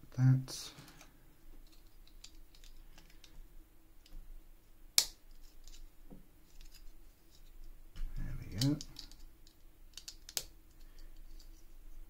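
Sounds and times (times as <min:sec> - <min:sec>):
plastic bricks clicking together: 0:08.5 - 0:11.5.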